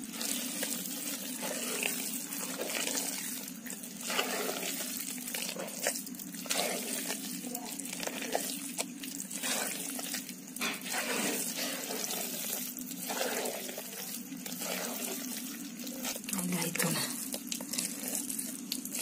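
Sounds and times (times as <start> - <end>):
hand stirring wet batter: 0.0 - 19.0.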